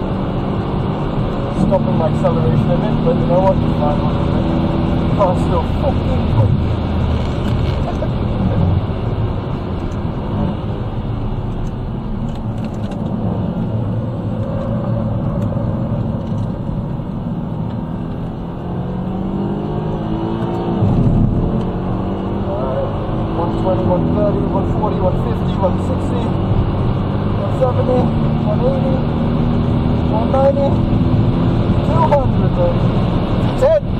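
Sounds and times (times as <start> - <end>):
car engine from inside cabin: 0.0 - 33.9
engine gear change: 5.1 - 8.8, 11.4 - 18.7.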